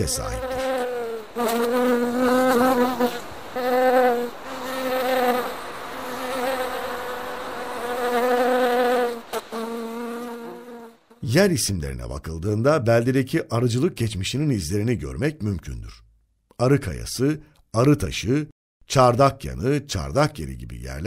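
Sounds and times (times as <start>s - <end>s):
honeybees buzzing: 0.0s - 11.2s.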